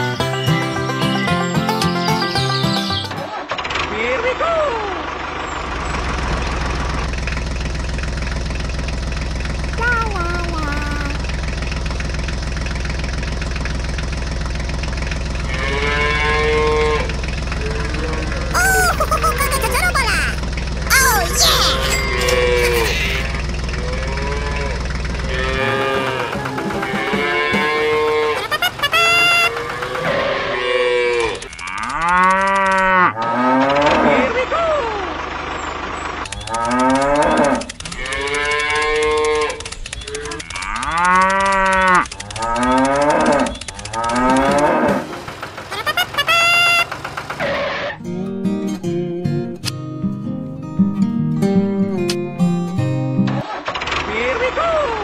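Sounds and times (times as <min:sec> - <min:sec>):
cattle mooing: 0:15.5 - 0:17.1, 0:21.9 - 0:28.4, 0:30.0 - 0:34.3, 0:36.5 - 0:45.1.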